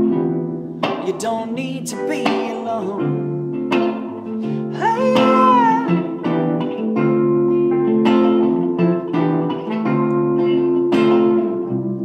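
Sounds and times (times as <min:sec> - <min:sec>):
guitar chords strummed: 0:00.0 - 0:12.0.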